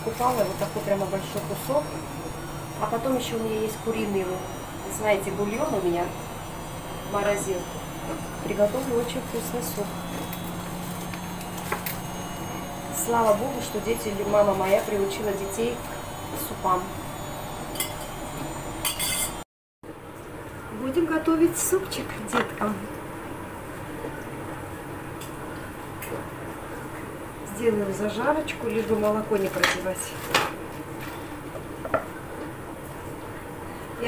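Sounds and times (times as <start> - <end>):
plastic bag rustling: 0.0 - 1.8
steady low hum: 0.0 - 19.4.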